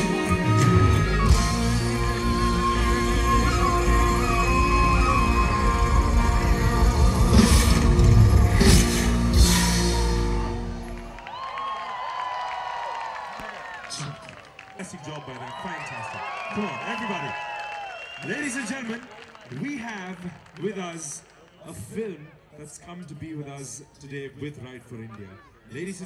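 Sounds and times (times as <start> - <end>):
live rock band playing: 0.0 - 11.1
crowd voices: 0.0 - 26.0.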